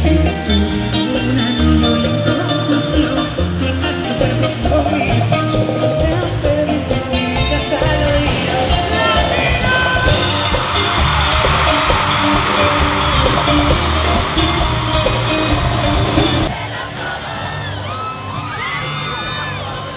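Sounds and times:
live bachata band playing: 0.0s - 19.9s
crowd cheering and screaming: 8.6s - 19.9s.

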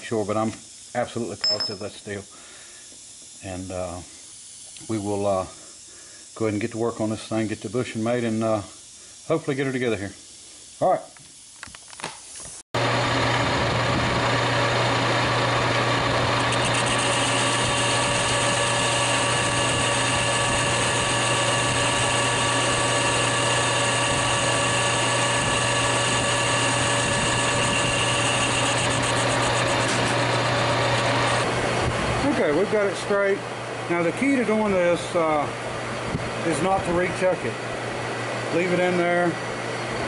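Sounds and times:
lathe cutting tone: 12.8s - 31.8s
metal lathe running: 12.8s - 31.8s.

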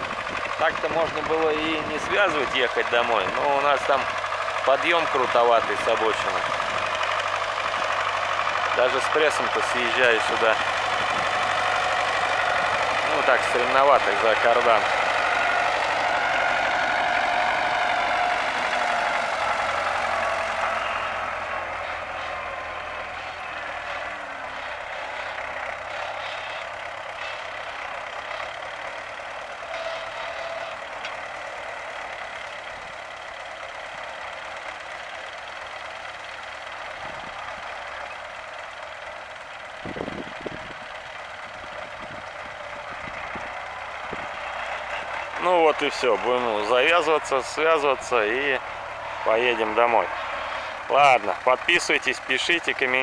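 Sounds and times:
tractor diesel engine running: 0.0s - 53.0s.

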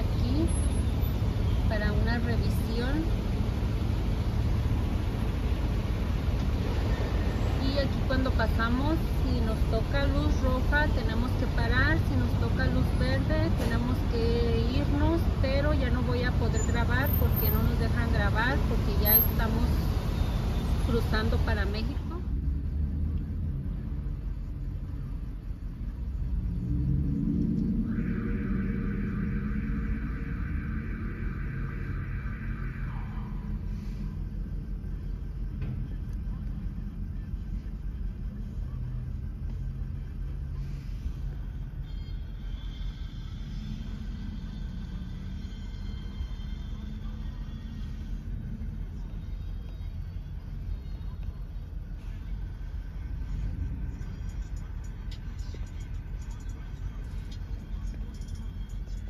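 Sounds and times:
vehicle engines idling: 0.0s - 59.0s
high steady tone dropping in pitch: 26.3s - 34.9s.

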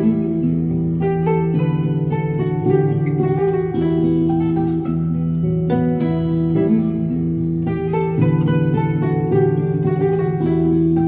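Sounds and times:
plucked zither melody: 0.0s - 11.0s.

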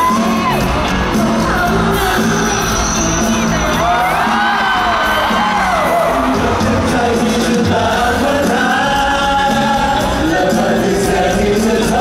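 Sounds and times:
band accompaniment: 0.0s - 12.0s
people singing: 0.0s - 12.0s.

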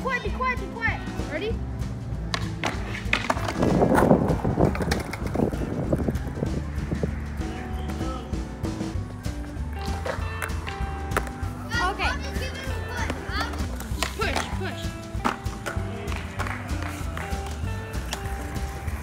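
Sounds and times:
background music: 0.0s - 19.0s
skateboard wheels rolling on concrete: 0.0s - 19.0s.

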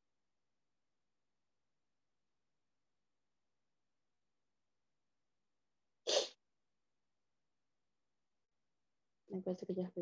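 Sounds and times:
person sneezing: 6.1s - 6.4s.

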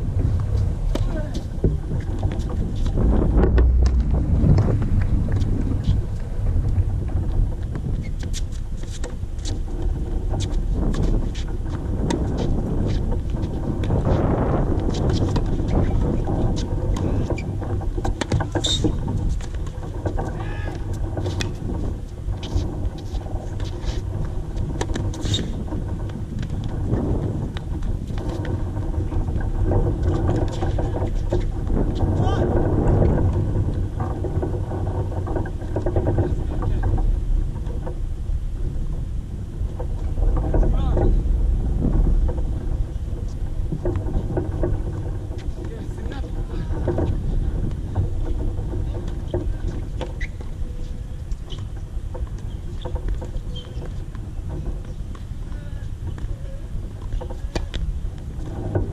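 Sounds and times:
wind buffeting microphone: 0.0s - 58.9s
faint voices: 0.8s - 1.7s, 55.5s - 57.9s.

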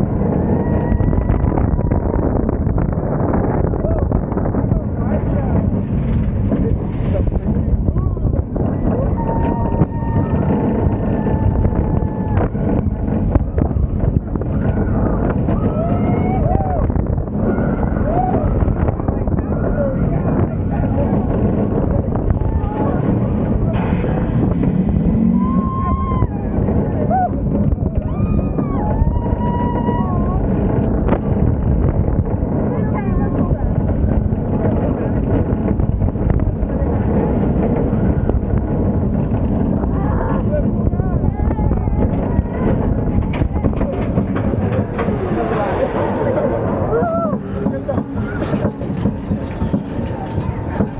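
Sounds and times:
roller coaster rumbling on track: 0.0s - 50.9s
wind buffeting microphone: 0.0s - 50.9s
rider whooping: 8.6s - 13.2s, 14.4s - 18.8s, 25.0s - 30.7s, 45.1s - 48.7s.

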